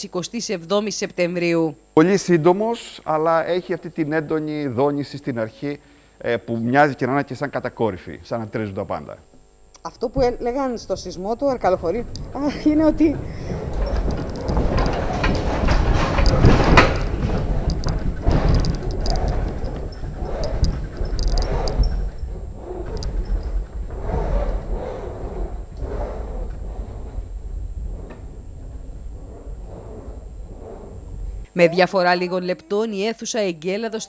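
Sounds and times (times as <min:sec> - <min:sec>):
deep rumble: 0:10.1 - 0:31.5
furniture knocking and rattling: 0:10.1 - 0:31.5.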